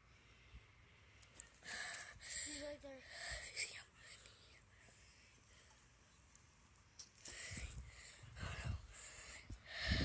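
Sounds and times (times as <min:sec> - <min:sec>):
person whispering: 0:02.4 - 0:04.8.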